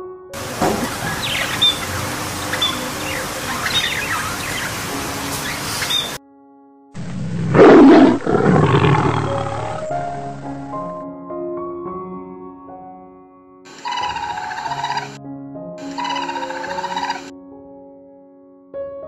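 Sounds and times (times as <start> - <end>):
soft background music: 0.0 - 7.0, 8.7 - 19.0
outdoor ambience: 0.4 - 6.2, 7.0 - 10.9, 13.7 - 15.2, 15.8 - 17.3
bird chirps: 0.7 - 6.2, 13.7 - 15.2, 15.8 - 17.3
lion roaring: 7.0 - 10.8, 13.7 - 15.2, 15.8 - 17.3.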